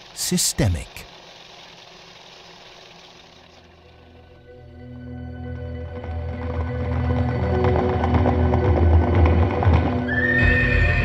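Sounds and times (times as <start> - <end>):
sustained ambient music: 3.6 - 11.0
horse whinnying: 10.0 - 11.0.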